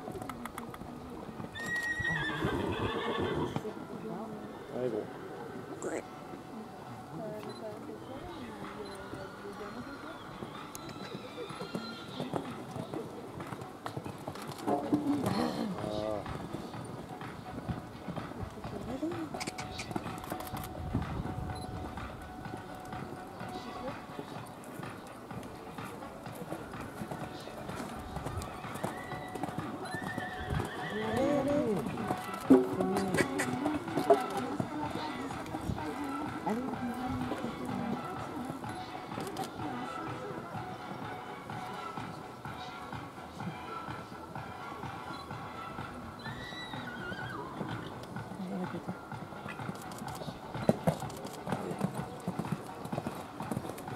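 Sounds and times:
horse hoofbeats on sand: 0:08.2 - 0:53.9.

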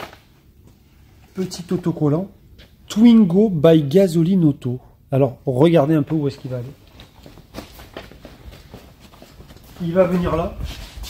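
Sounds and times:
footsteps on concrete floor: 0:06.0 - 0:11.0.

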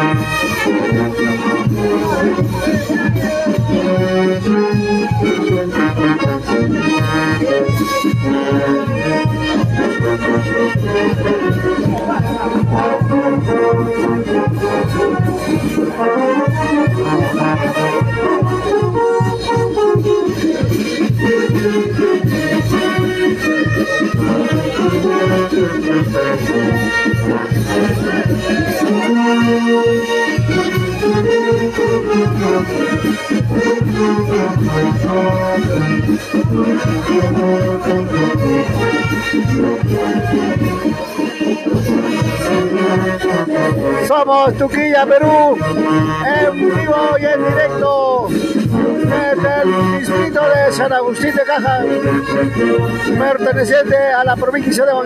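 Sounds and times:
brass band playing dance music: 0:00.0 - 0:55.0
sousaphone bass beat: 0:00.0 - 0:55.0.

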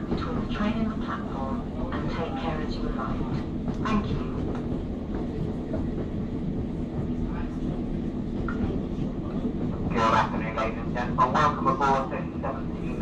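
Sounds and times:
train wheels rumbling on rail: 0:00.0 - 0:13.0.

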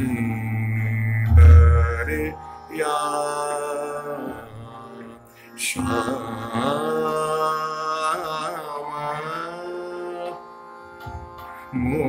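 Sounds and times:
man singing classical vocal: 0:00.0 - 0:12.0
steady drone: 0:00.0 - 0:12.0.

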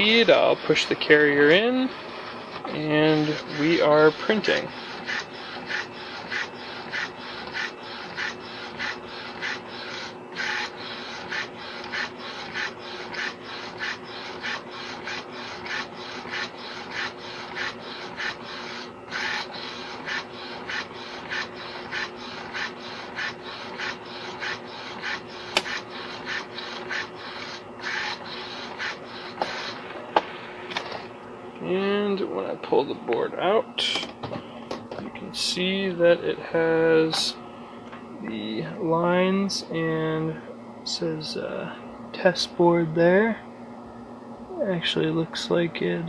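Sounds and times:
steady printer hum: 0:00.0 - 0:46.0.

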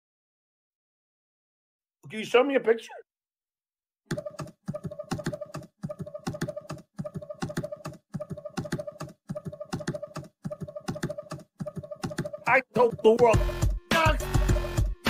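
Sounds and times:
computer keyboard typing: 0:04.1 - 0:12.5.

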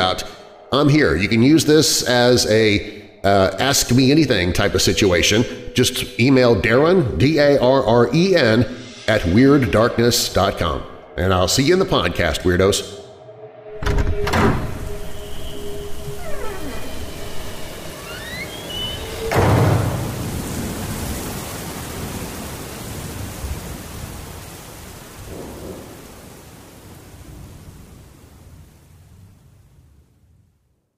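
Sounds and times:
held notes and gliding tones: 0:11.2 - 0:19.4
steady rain: 0:15.9 - 0:30.7
thunder crash: 0:18.6 - 0:30.1.

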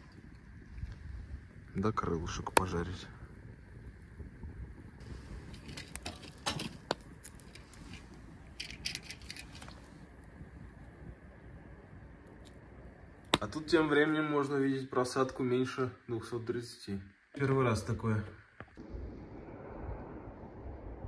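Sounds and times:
firewood crackling and popping: 0:00.0 - 0:15.5.

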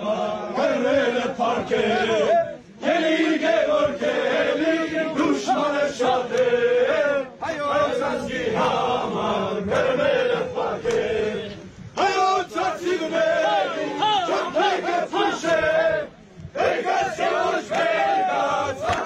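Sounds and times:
men singing together: 0:00.0 - 0:19.0.

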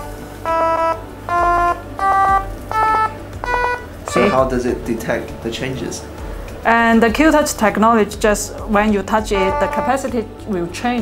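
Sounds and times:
short electronic notes: 0:00.0 - 0:05.0, 0:09.3 - 0:10.2.

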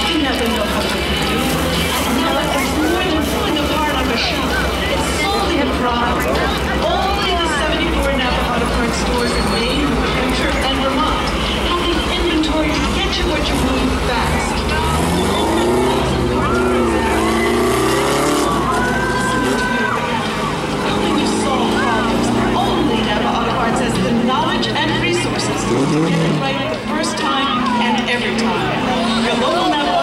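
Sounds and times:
race car engine revving: 0:00.0 - 0:30.0
voices and crowd noise: 0:00.0 - 0:30.0.

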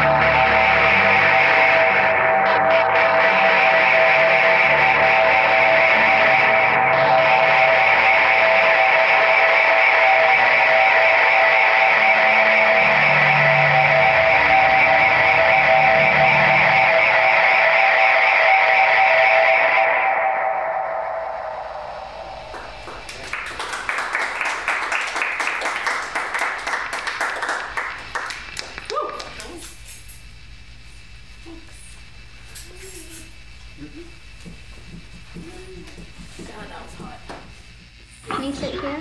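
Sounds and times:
distorted electric guitar drone: 0:00.0 - 0:28.8
rapid scratchy guitar strumming: 0:00.0 - 0:28.8.

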